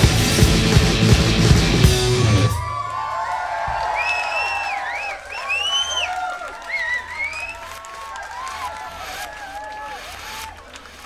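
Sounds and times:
concert crowd cheering and applauding: 0.0 - 11.0.

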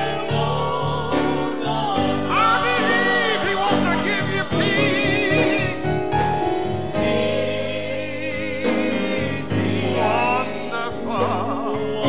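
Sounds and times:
choir singing gospel song: 0.0 - 12.0
keyboard chords: 0.0 - 12.0.

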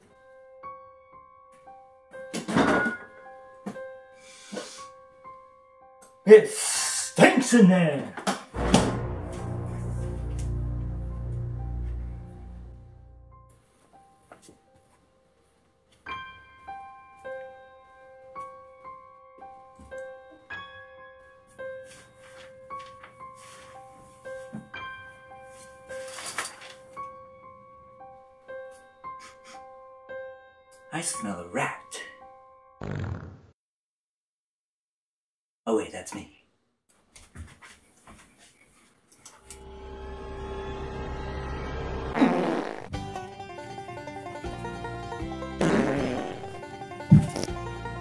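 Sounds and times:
soft piano music: 0.0 - 6.3, 9.2 - 32.8, 43.0 - 45.6, 46.4 - 48.0
quiet knocks: 47.1 - 47.6.

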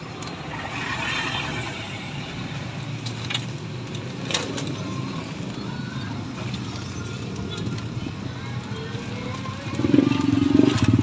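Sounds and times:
vehicle road noise on wet street: 0.0 - 11.0.

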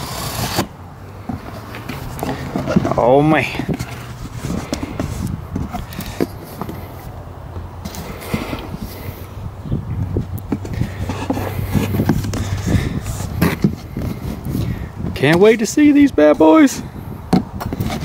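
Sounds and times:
shears snipping cardboard: 0.0 - 0.7
cardboard scraping and rustling: 0.0 - 7.1, 7.8 - 9.1, 10.5 - 14.7, 17.7 - 18.0
wind buffeting microphone: 0.0 - 18.0.

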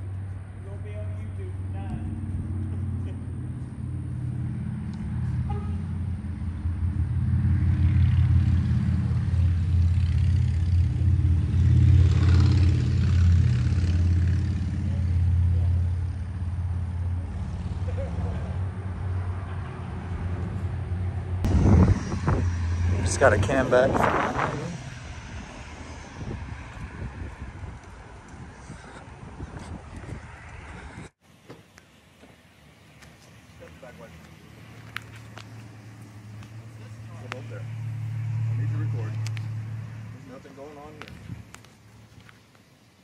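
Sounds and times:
low engine drone: 0.0 - 29.3, 34.3 - 41.0.

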